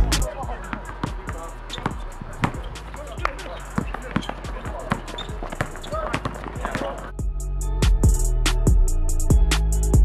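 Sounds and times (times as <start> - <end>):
music playing: 0.0 - 10.0
basketball bouncing on court: 0.3 - 7.1.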